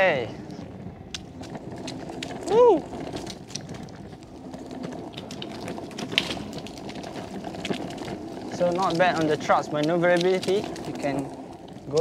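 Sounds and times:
skateboard wheels rolling on concrete: 0.0 - 12.0
wheels clicking over joints: 0.0 - 12.0.

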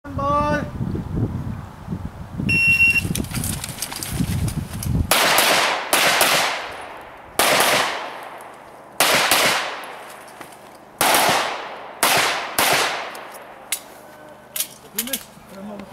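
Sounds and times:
shot timer beep: 2.5 - 3.1
pistol shots: 5.1 - 10.1, 11.0 - 13.6.

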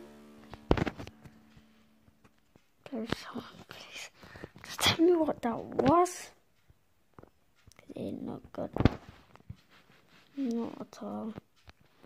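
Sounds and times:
boy whispering: 2.8 - 6.3.

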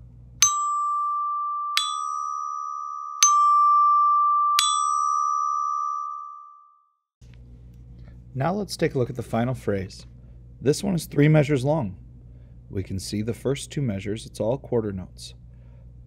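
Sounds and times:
glockenspiel notes: 0.4 - 6.7.

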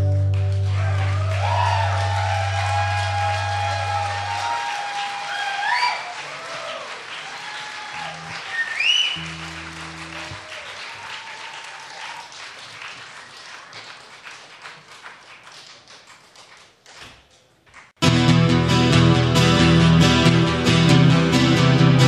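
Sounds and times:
audience applauding and cheering: 0.0 - 16.8
person whooping: 0.7 - 12.3
low held instrument notes: 9.2 - 10.6.

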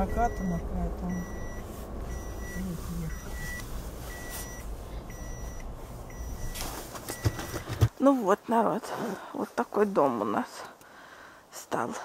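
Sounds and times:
low rumble of car engine: 0.0 - 7.5
car electronic warning beep: 0.0 - 7.8.

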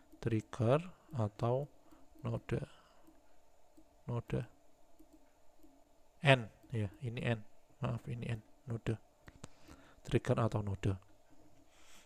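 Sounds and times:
person speaking: 0.0 - 3.2, 3.8 - 5.2, 6.2 - 9.0, 10.0 - 11.1
stylus clicking: 0.0 - 4.0, 4.9 - 5.9, 6.6 - 7.3.

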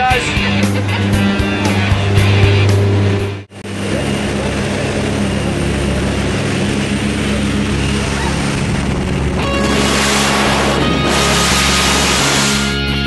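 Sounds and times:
propeller engine droning: 0.0 - 13.0
rushing wind: 0.7 - 13.0.

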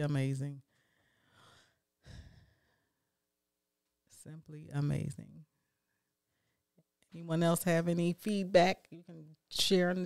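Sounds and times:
breathing into a microphone: 0.7 - 3.0.

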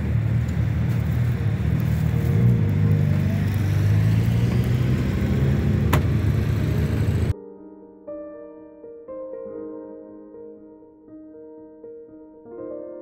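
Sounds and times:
motorcycle engines idling: 0.0 - 7.3.

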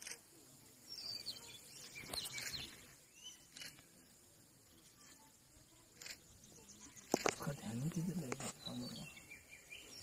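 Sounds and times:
bird chirps and whistled calls: 0.9 - 3.7.

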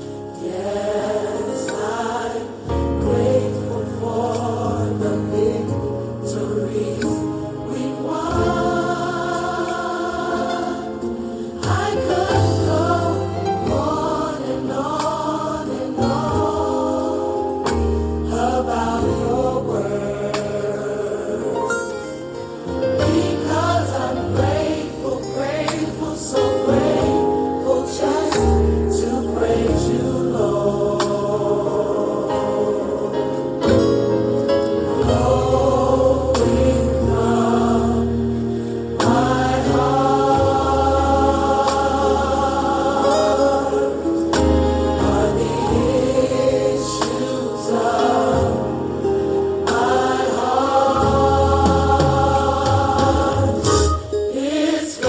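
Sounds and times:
choir singing long held notes: 0.0 - 55.0.

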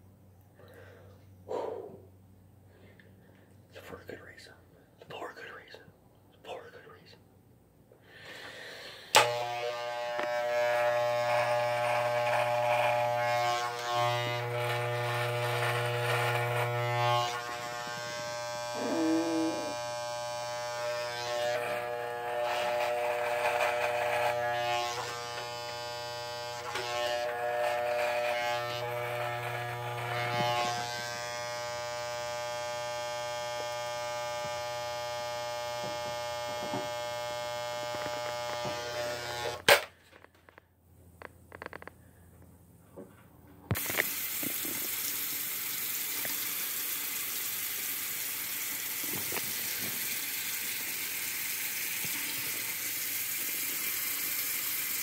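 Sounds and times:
electric razor buzzing: 9.1 - 39.8, 43.7 - 55.0
electric razor switch click: 9.2 - 10.4.

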